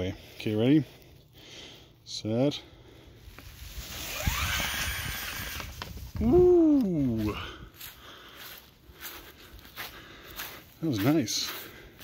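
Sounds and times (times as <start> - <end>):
electric motors whining: 4.0 - 5.8.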